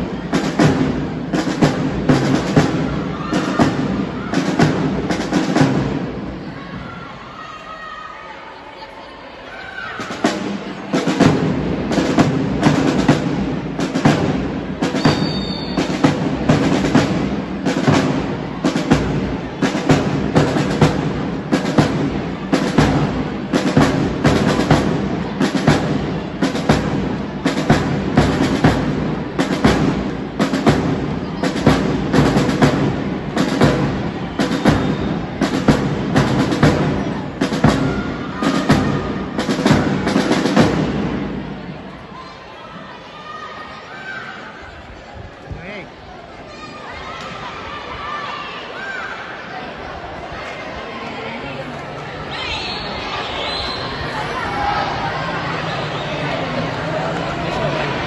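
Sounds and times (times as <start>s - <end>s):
marching drums beating: 0.0s - 6.6s, 10.0s - 41.9s.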